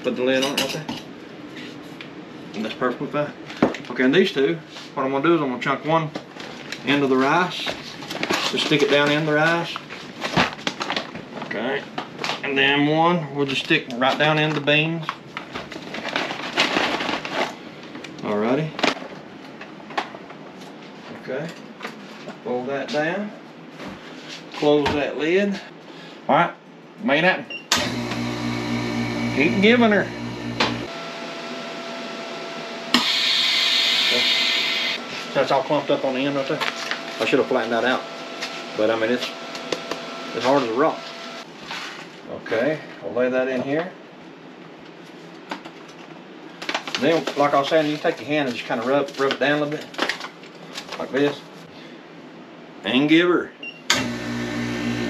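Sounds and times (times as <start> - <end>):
plastic bag crinkling: 15.7 - 17.6
vacuum pump humming: 27.7 - 41.5, 53.9 - 55.0.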